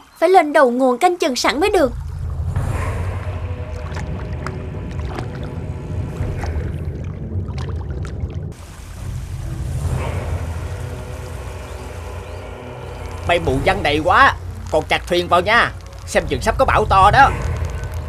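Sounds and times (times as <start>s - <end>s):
flowing water rushing: 1.3s - 18.0s
background music with held tones: 8.6s - 18.0s.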